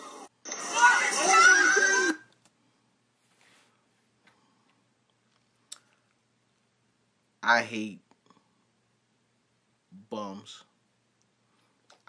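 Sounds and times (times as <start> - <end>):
video sound: 0.0 - 6.7.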